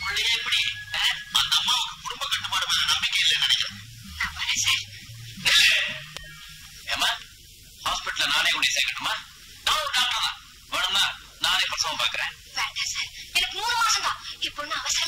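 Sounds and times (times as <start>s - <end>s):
film dialogue: 0.0s - 14.9s
soundtrack hiss: 0.0s - 15.0s.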